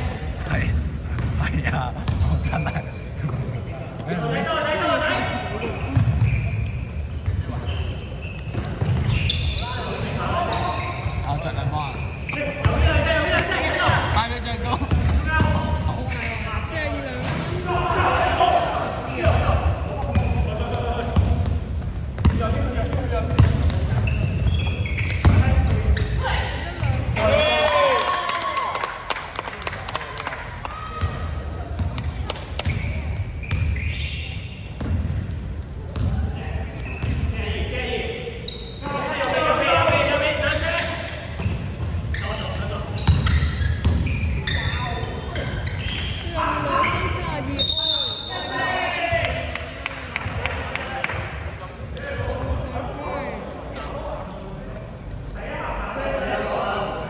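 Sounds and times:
basketballs bouncing on court floor: 0:00.2 - 0:04.2, 0:05.5 - 0:17.7, 0:19.2 - 0:27.1, 0:30.6 - 0:37.4, 0:39.6 - 0:46.2.

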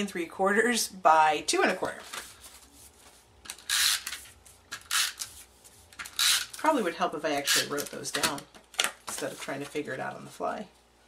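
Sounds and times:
paper rustling: 0:01.8 - 0:03.3.

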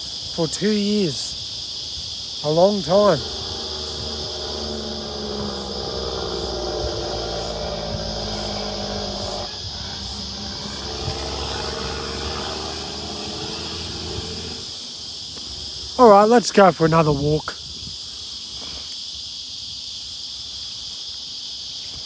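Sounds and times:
insects trilling: 0:00.0 - 0:22.0
low steady drone: 0:02.4 - 0:16.2.

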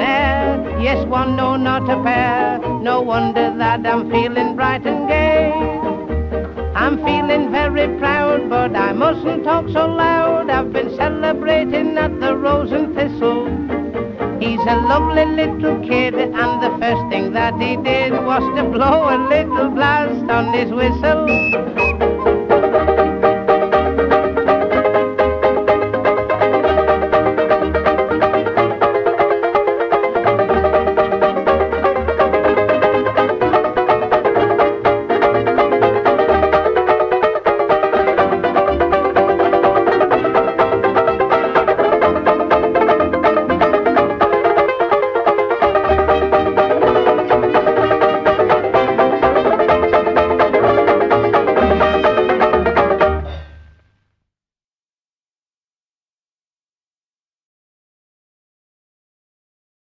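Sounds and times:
banjo-ukulele strumming: 0:00.0 - 0:53.6
dance band playing: 0:21.1 - 0:25.2, 0:26.3 - 0:53.6.

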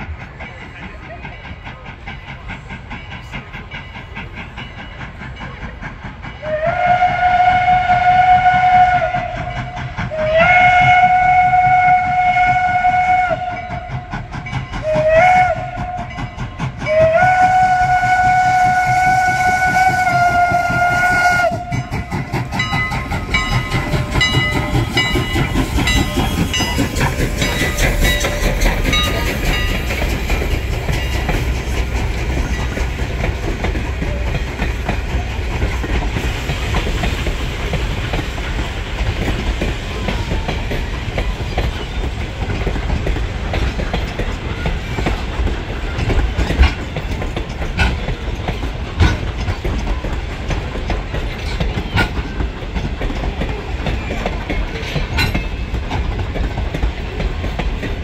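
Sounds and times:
train wheels rumbling on rail: 0:00.0 - 0:58.0
steam locomotive whistle: 0:06.4 - 0:29.9.

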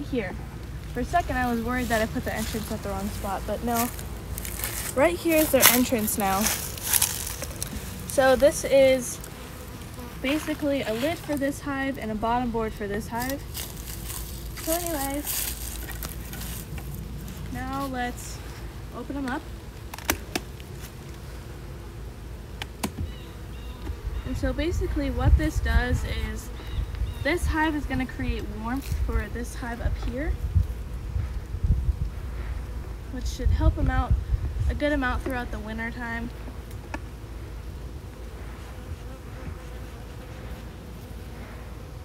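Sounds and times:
low outdoor rumble: 0:00.0 - 0:39.5
honeybees humming: 0:00.0 - 0:42.0.

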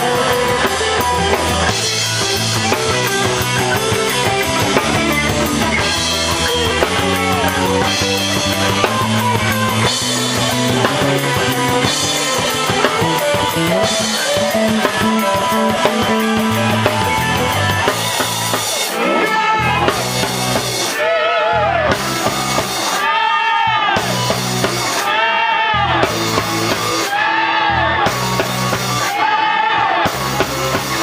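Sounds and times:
electric guitar bent notes: 0:00.0 - 0:21.0, 0:24.0 - 0:29.1
bass guitar: 0:00.0 - 0:31.0
drum kit: 0:00.0 - 0:31.0.

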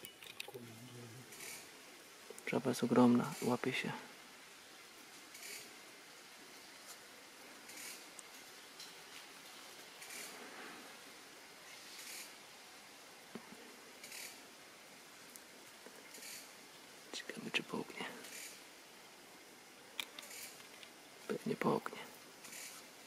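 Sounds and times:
faint steady hiss: 0:00.0 - 0:23.0
soft rustles: 0:06.4 - 0:11.0.

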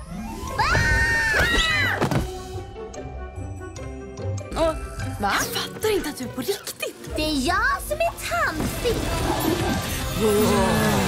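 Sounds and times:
trailer music: 0:02.1 - 0:11.0.

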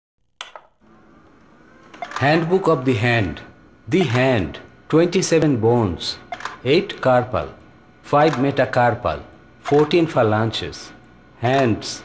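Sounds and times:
sharp click: 0:00.4 - 0:00.7, 0:06.3 - 0:06.6, 0:08.2 - 0:08.5
faint steady hum: 0:00.4 - 0:12.0.

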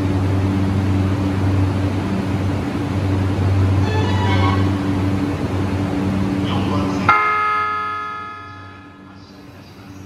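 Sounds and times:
bell-like chime ringing: 0:07.1 - 0:09.0.

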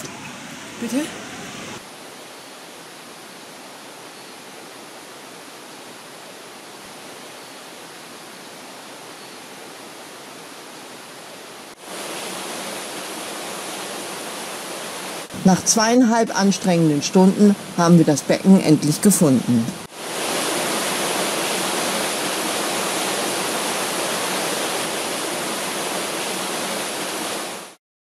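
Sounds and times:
water rushing: 0:00.0 - 0:27.8.

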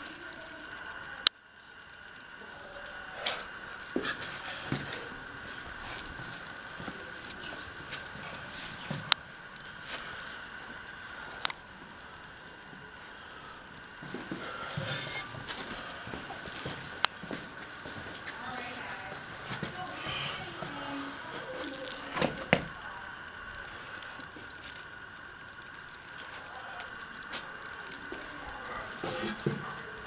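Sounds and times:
faint high hum: 0:00.0 - 0:30.0.

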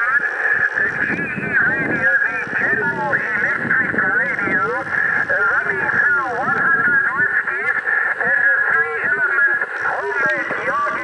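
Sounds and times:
distorted voice over radio: 0:00.0 - 0:11.0
radio static: 0:00.0 - 0:11.0.

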